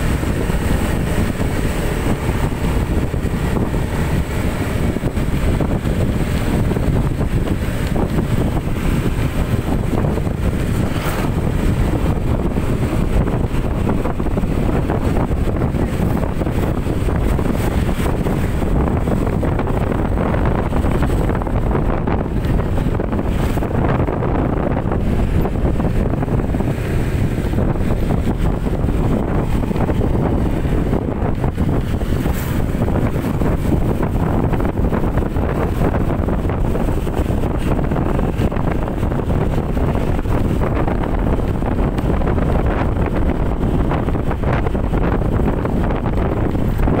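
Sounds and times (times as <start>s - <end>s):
motorcycle riding rumble: 0.0s - 47.0s
wind buffeting microphone: 0.0s - 47.0s.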